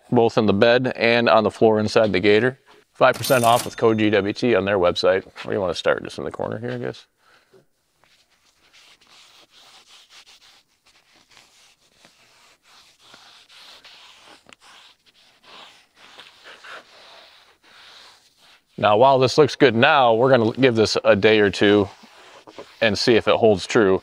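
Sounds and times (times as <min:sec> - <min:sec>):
wiping strokes on plastic: 0:08.0 - 0:24.0.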